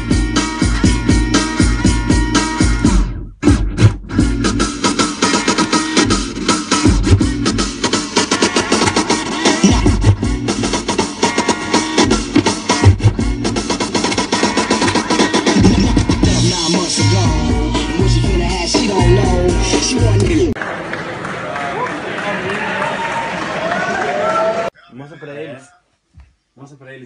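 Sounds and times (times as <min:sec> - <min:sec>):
drum-heavy record scratched with crossfader: 0:00.0 - 0:20.6.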